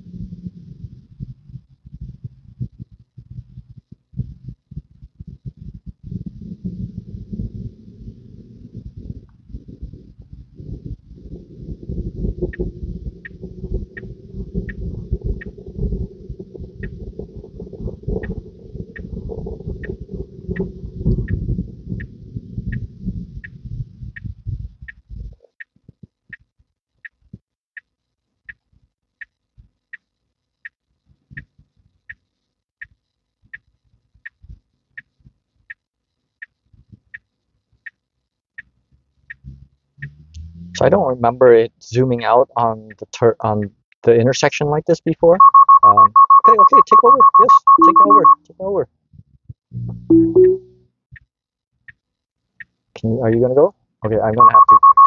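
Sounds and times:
turn signal ticking: 11.6s - 27.2s, 38.6s - 40.9s, 45.4s - 48.4s, 54.0s - 55.0s.

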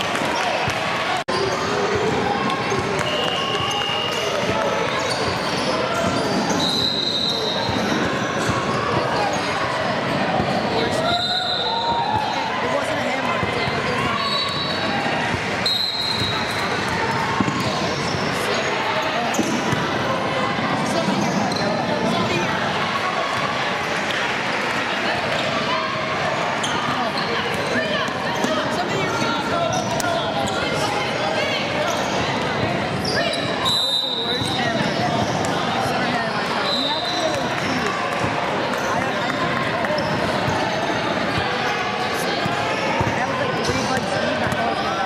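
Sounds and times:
indistinct shouting and chatter: 0.0s - 45.0s.

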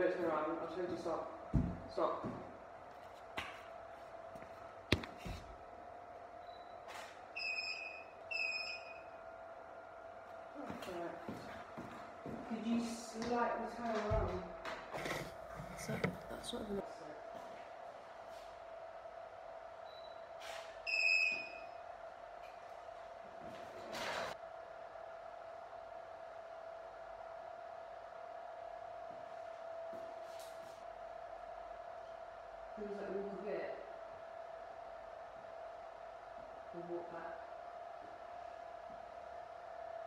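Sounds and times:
electrical hum: 0.0s - 40.0s.

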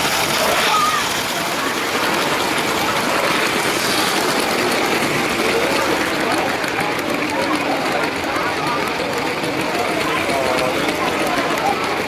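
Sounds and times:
crowd noise in a large hall: 0.0s - 12.0s
toy train wheels and motor rattling: 0.0s - 12.0s.

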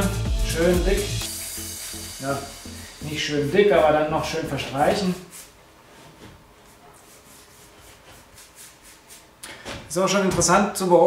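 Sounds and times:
paintbrush swishing strokes: 1.5s - 9.4s.

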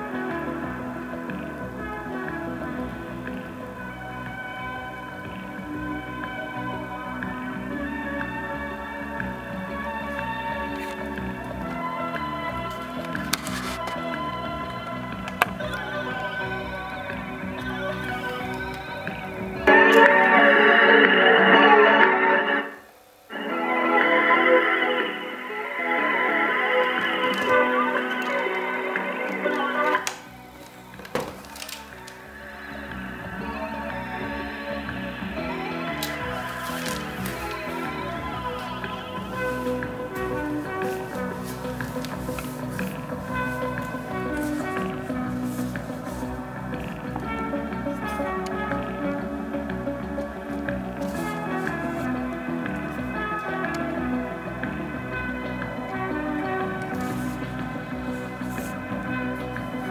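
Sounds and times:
thin cassette music playback: 0.0s - 22.4s, 23.2s - 59.9s.

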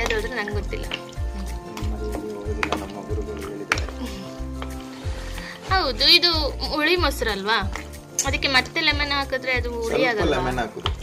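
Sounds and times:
music with sustained tones: 0.0s - 11.0s
repeating bass beat: 1.4s - 4.0s.

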